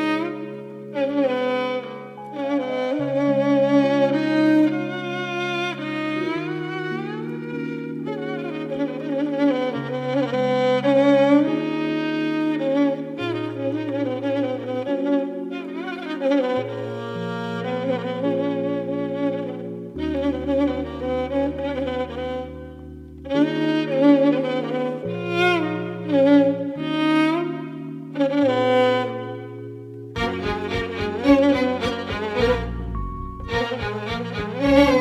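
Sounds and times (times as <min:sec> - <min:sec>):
solo violin melody: 0:00.0 - 0:35.0
sustained low chords: 0:30.2 - 0:35.0.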